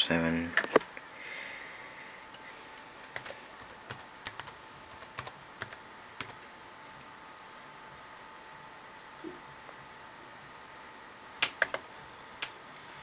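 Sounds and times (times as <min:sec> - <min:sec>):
laptop keyboard typing: 0:02.3 - 0:06.5, 0:11.4 - 0:11.8.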